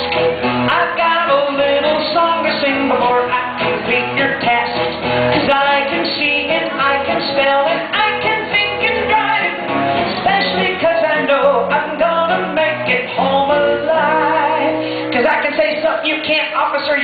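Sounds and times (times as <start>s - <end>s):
instrumental backing music: 0.0s - 17.0s
person singing: 0.0s - 17.0s.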